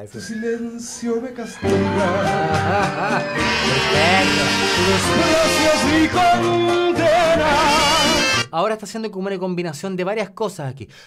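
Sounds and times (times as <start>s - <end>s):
man singing with vibrato: 0.1s - 8.5s
band accompaniment: 1.6s - 8.5s.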